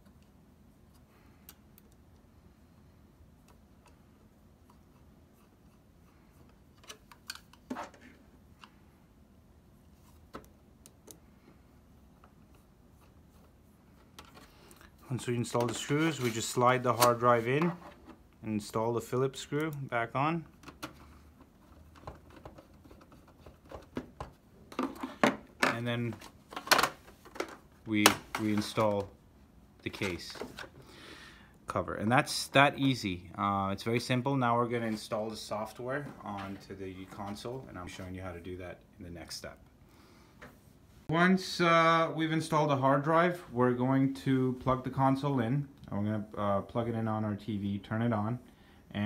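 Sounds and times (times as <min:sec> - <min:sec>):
screwdriver handling noise: 0:06.4 - 0:08.8, 0:20.5 - 0:27.7.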